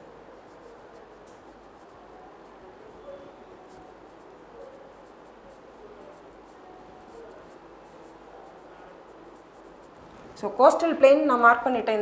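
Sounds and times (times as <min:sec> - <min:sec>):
marker scratching on a whiteboard: 0:00.0 - 0:10.8.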